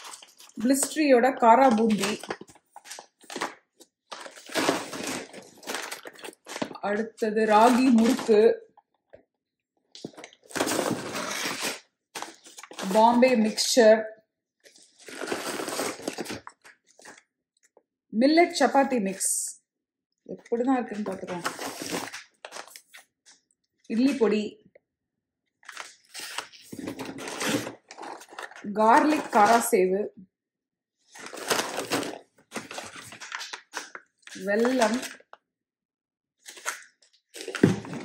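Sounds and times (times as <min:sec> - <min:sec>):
plastic snack pouches crinkling: 0:00.0 - 0:08.4, 0:31.2 - 0:35.4.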